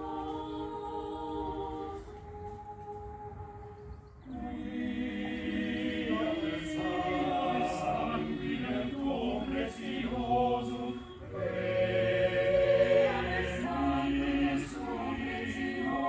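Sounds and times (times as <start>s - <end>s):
choir singing a cappella: 0.0s - 3.6s, 4.2s - 16.0s.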